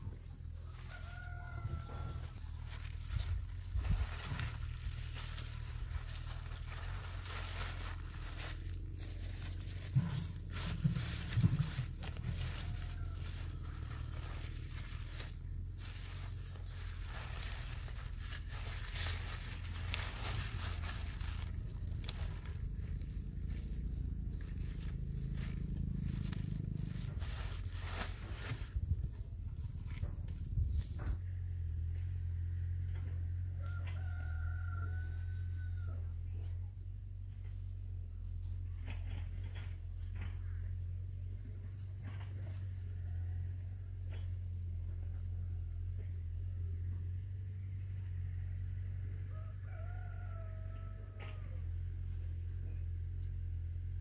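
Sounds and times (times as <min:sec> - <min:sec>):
rustling of leafy greens: 0:00.0 - 0:31.2
rooster crowing: 0:00.6 - 0:03.2, 0:10.2 - 0:22.6, 0:33.4 - 0:36.2, 0:49.2 - 0:51.8
steady low rumble: 0:01.6 - 0:33.5.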